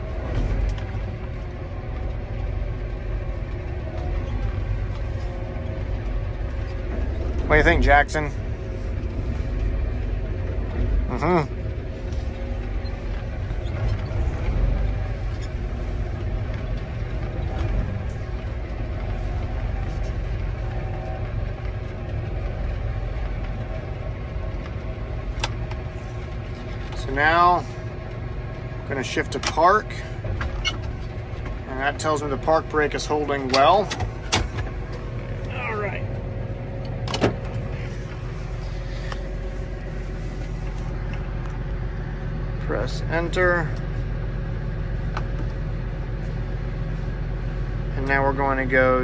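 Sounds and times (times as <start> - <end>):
tractor engine idling: 0.0 - 49.0.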